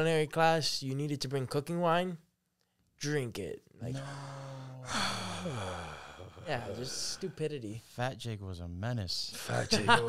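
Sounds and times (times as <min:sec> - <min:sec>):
man sighing: 0:03.9 - 0:07.3.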